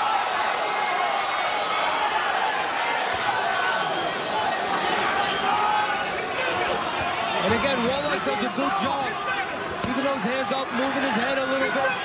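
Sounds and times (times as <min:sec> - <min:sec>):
crowd voices din: 0:00.0 - 0:12.0
people shouting: 0:00.0 - 0:12.0.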